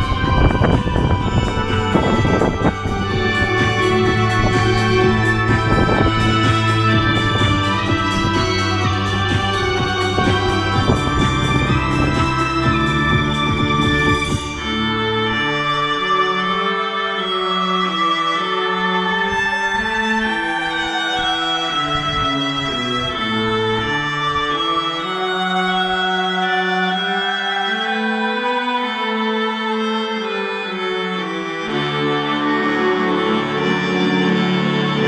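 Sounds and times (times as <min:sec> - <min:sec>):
string music with violin melody: 0:00.0 - 0:35.0.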